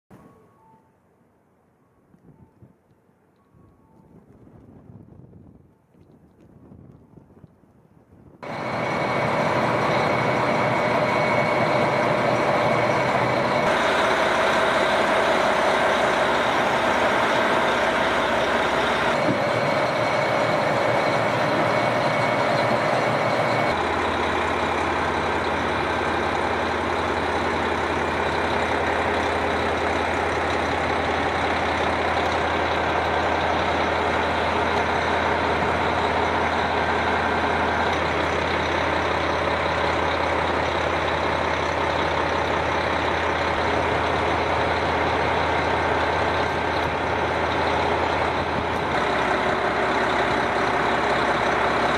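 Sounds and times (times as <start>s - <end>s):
diesel train engine idling: 8.4s - 51.9s.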